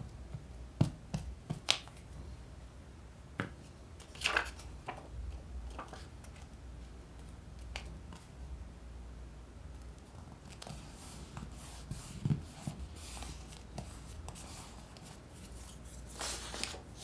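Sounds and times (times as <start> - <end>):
paper rustling: 4.0 - 5.1, 5.7 - 6.5, 10.4 - 17.0.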